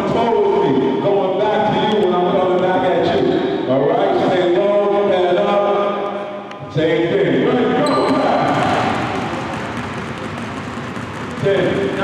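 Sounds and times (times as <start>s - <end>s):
basketballs bouncing on wooden floor: 7.8s - 12.0s.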